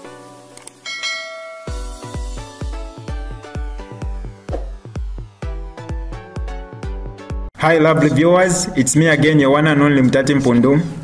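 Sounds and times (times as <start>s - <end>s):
music bed: 0.0s - 7.4s
notification bell chime: 0.8s - 2.2s
bass-heavy electronic beat: 1.7s - 7.5s.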